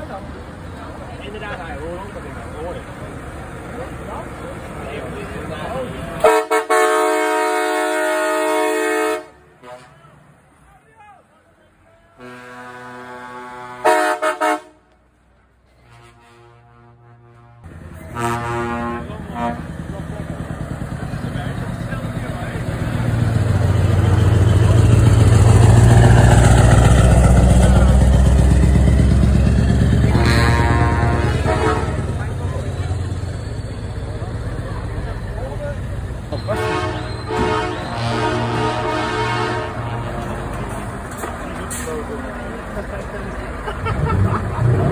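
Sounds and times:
diesel truck engine rumble: 0.0 - 44.9
truck air horn blasts: 6.2 - 10.1, 12.2 - 14.9, 15.8 - 19.9, 29.9 - 32.3, 36.3 - 40.9.

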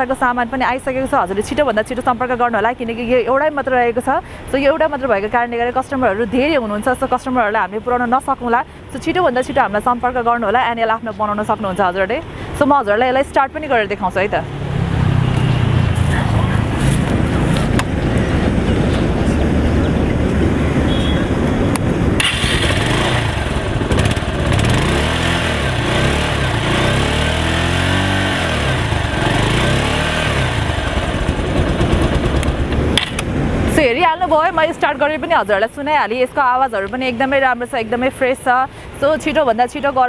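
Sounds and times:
motorcycle engine idling and revving: 13.0 - 33.7.

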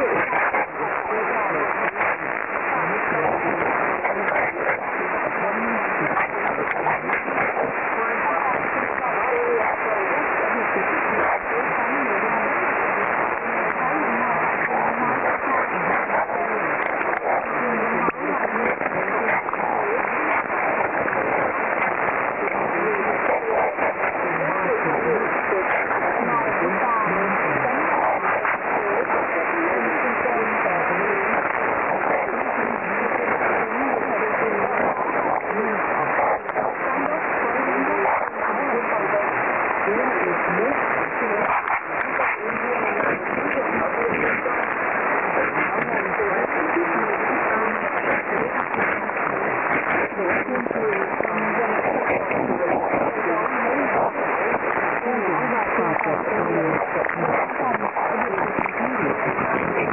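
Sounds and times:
faint radio voice: 0.0 - 59.9
radio static hiss: 0.0 - 59.9.

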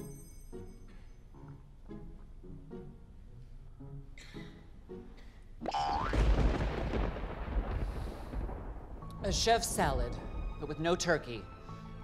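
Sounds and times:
deep rumbling boom: 6.1 - 10.6.

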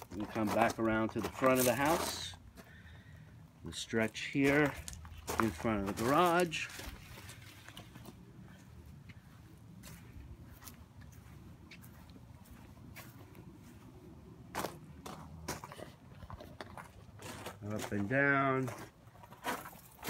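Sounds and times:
footsteps crunching on gravel: 0.0 - 3.1, 3.7 - 20.0.

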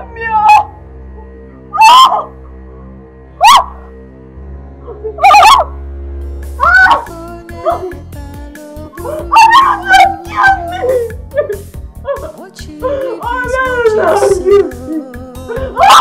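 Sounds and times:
background music score: 0.0 - 16.0
woman wailing and crying: 6.6 - 8.1, 9.0 - 16.0.

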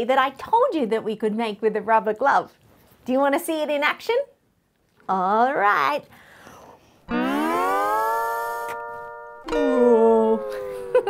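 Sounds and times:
rubber toy blown through a straw: 7.1 - 9.2.

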